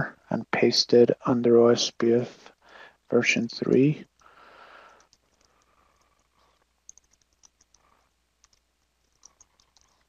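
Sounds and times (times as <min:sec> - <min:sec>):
computer keyboard typing: 0:04.8 - 0:10.0.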